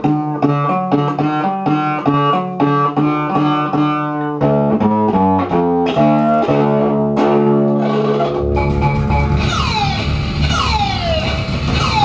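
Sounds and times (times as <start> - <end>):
high note sliding downward: 7.8 - 12.0
low bass notes: 8.2 - 12.0.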